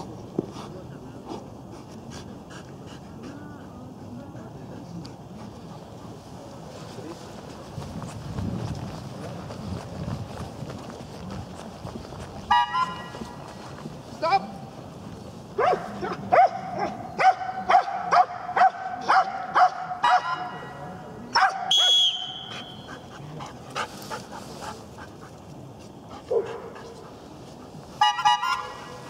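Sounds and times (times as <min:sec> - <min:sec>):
dog barking sharply: 0:15.6 - 0:20.5, 0:21.4 - 0:22.0
short high whistle blast: 0:21.7 - 0:22.8.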